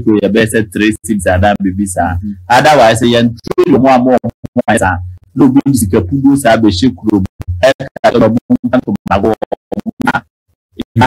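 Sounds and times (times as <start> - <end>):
stuttering speech fragments: 0.0 - 11.0.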